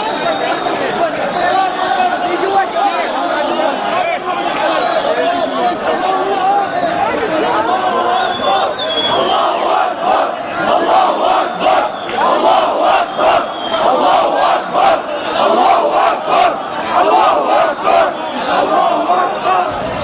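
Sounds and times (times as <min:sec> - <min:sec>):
crowd chanting slogans: 0:00.0 - 0:20.0.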